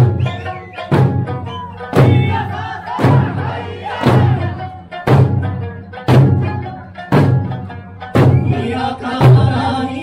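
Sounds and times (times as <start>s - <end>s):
drums struck in unison: 0.0s - 10.0s
folk song singing: 0.2s - 5.0s, 8.2s - 10.0s
plucked lute accompaniment: 4.3s - 8.4s.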